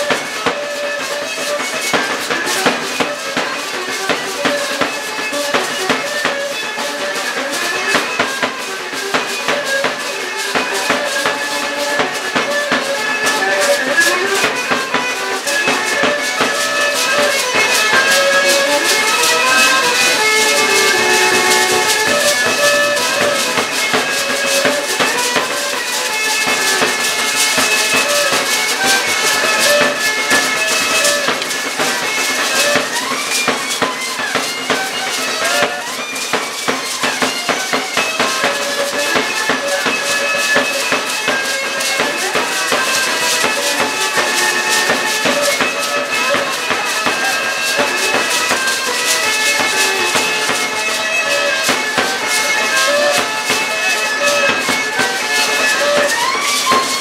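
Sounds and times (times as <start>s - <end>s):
reedy melody: 0.0s - 57.0s
steady drum beat: 0.0s - 57.0s
hand-held rattles shaking: 0.8s - 57.0s.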